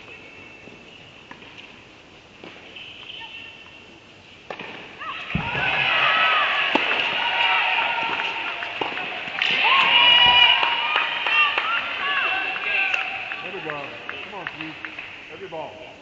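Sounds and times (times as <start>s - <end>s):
tennis ball hits echoing: 4.5s - 7.2s, 8.0s - 10.7s
crowd shouting and cheering: 5.0s - 15.3s.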